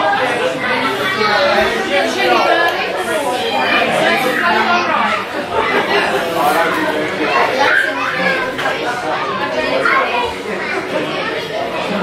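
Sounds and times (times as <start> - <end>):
children playing: 0.0 - 12.0
people chattering: 0.0 - 12.0.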